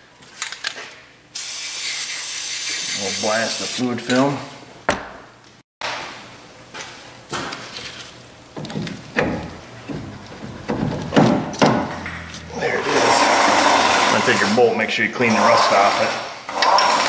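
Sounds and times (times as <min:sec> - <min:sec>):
metal knocks and clunks: 0:08.6 - 0:14.2.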